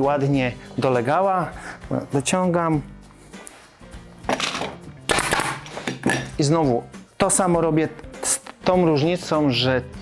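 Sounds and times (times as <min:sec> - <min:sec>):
pneumatic stapler firing: 0:04.4 - 0:06.0.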